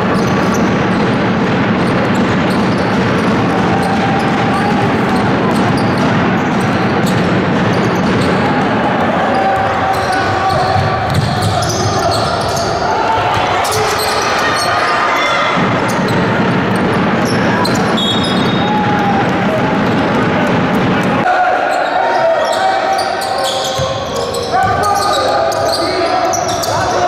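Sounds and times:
basketball bouncing on wooden court: 0.0s - 12.7s, 15.6s - 21.2s.

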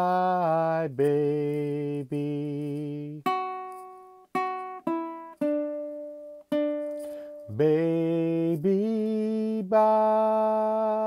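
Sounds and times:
ukulele plucked notes: 1.0s - 11.0s.

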